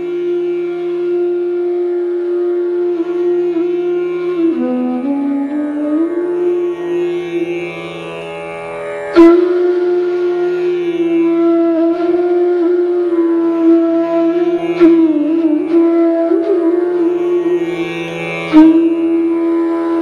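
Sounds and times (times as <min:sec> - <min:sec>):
flute holding long notes: 0:00.0 - 0:07.8, 0:09.1 - 0:20.0.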